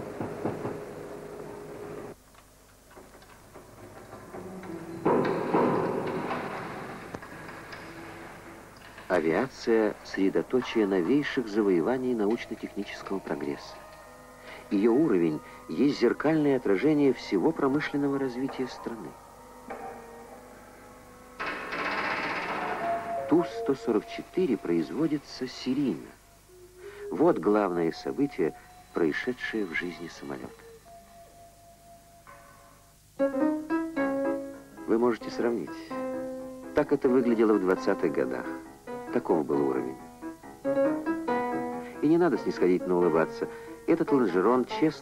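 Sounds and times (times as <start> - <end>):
metallic knocks and clanks: 2.9 - 11.4, 21.4 - 23.7
steady musical tone: 3.7 - 45.0.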